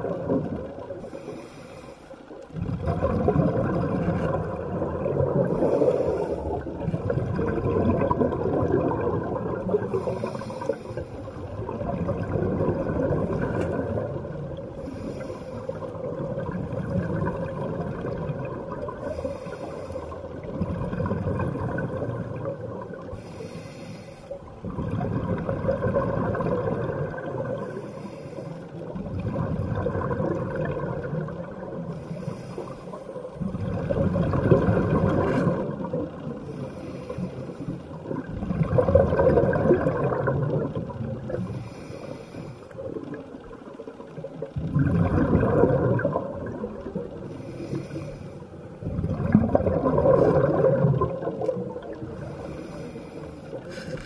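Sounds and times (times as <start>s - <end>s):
exhaled bubbles rushing: 0.0s - 1.3s, 2.5s - 23.4s, 24.4s - 27.9s, 28.8s - 32.1s, 33.3s - 41.9s, 42.7s - 47.8s, 48.7s - 52.9s
regulator inhale hiss: 1.0s - 2.4s, 5.5s - 6.8s, 9.8s - 11.7s, 14.6s - 16.1s, 18.9s - 20.5s, 23.0s - 24.5s, 27.6s - 29.0s, 31.8s - 33.4s, 36.4s - 38.0s, 41.3s - 43.2s, 47.1s - 48.8s, 51.9s - 54.0s.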